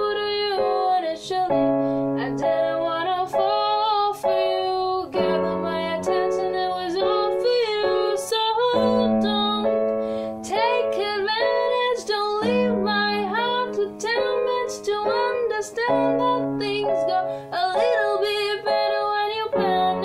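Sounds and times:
electronic keyboard chords: 0.0s - 20.0s
woman singing: 0.0s - 20.0s.

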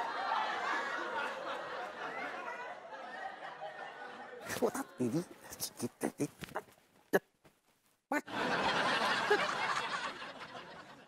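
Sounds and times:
laugh track laughter: 0.0s - 6.3s, 8.1s - 11.0s.

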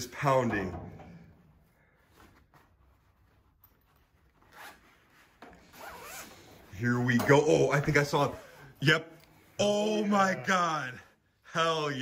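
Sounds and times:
zipper being pulled open: 4.2s - 6.7s.

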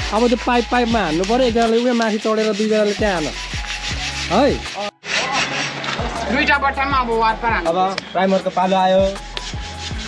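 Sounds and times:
sanding steel bars by hand: 0.0s - 6.5s, 7.7s - 10.0s
squeals from sanding strokes: 0.2s - 6.2s, 7.7s - 10.0s.

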